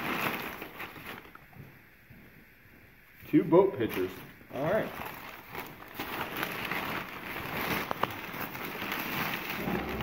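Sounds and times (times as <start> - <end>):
plastic bag rustling: 0.0 - 1.6, 3.8 - 10.0.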